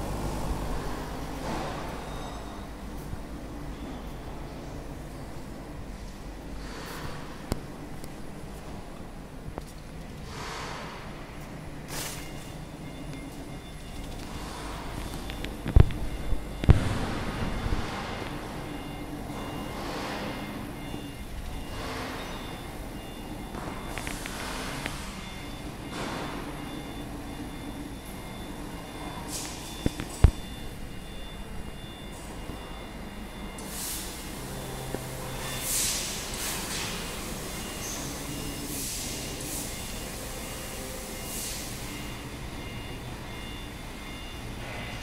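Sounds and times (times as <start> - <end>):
high whine and hiss: 0.0 - 1.4
laser cutting machine hum: 0.0 - 2.8, 32.7 - 45.0.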